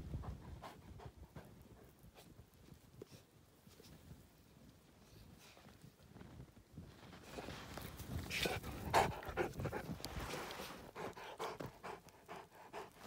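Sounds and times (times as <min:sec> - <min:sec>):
dog panting hard: 0:00.2 - 0:02.0, 0:08.5 - 0:10.0, 0:10.9 - 0:13.0
snow crunching: 0:06.0 - 0:08.9, 0:09.5 - 0:10.9.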